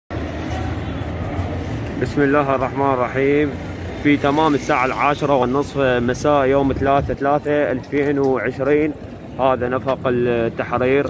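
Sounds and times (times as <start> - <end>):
faint indistinct voices: 0.1 - 5.0
low urban rumble: 0.1 - 11.0.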